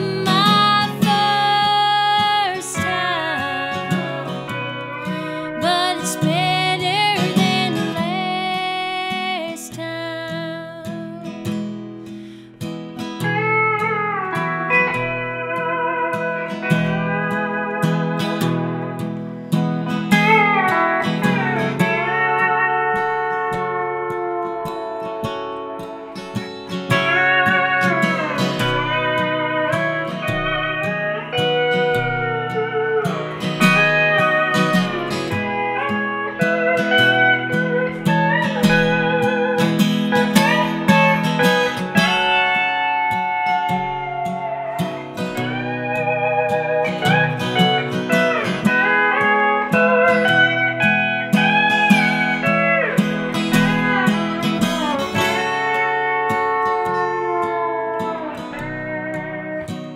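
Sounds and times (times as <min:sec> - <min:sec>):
pedal steel guitar solo: 0:00.0 - 0:59.9
strummed acoustic guitar: 0:00.0 - 0:59.9.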